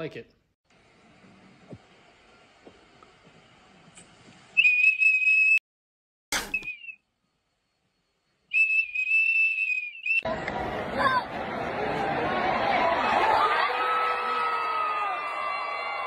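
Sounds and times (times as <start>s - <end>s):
shrill whistle toots: 4.6s - 5.6s, 6.4s - 7.1s, 8.0s - 10.3s
sharp click: 6.3s - 6.8s
crowd chatter: 10.3s - 14.0s.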